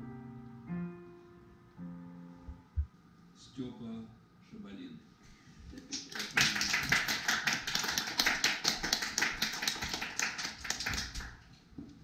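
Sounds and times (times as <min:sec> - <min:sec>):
people clapping: 0:05.8 - 0:11.6.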